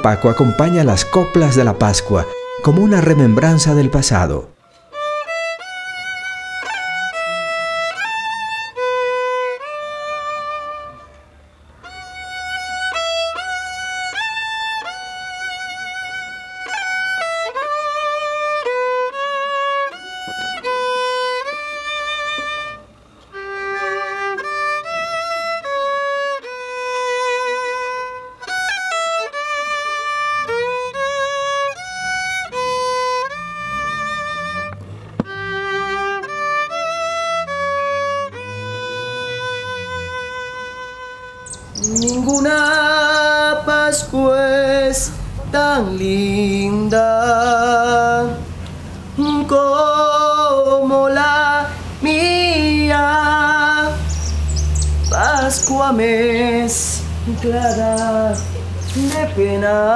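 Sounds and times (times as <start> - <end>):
solo fiddle melody: 0.0 - 59.9.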